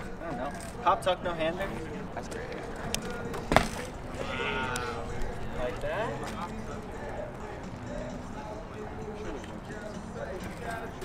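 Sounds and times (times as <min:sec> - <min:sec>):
bike riding on concrete: 0:00.0 - 0:11.0.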